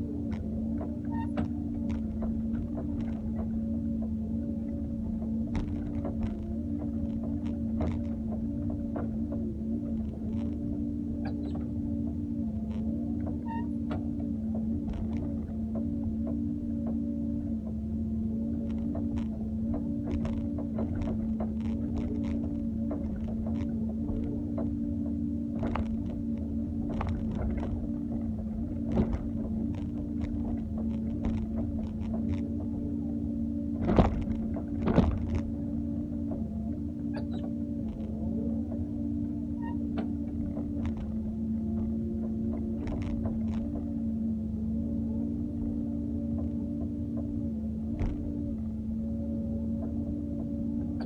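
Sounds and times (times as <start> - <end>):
excavator engine droning: 0.0 - 51.0
hydraulic pump whine: 0.0 - 51.0.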